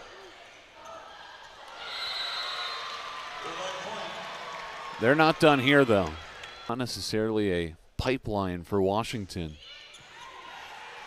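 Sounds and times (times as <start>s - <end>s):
crowd and player voices: 0.0s - 11.0s.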